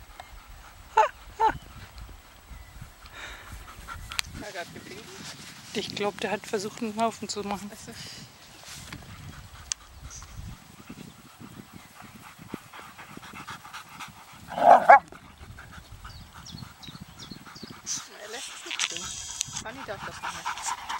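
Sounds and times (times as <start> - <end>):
dogs scuffling and panting: 3.5 - 20.9
dog barking: 14.5 - 15.0.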